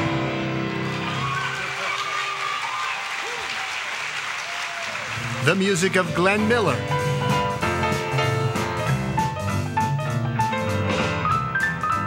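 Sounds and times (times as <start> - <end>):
audience applauding: 0.7 - 6.8.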